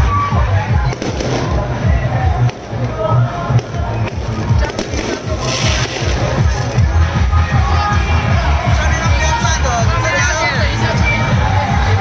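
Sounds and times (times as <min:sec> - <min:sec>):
music playing: 0:00.0 - 0:12.0
firecrackers cracking: 0:00.8 - 0:06.9.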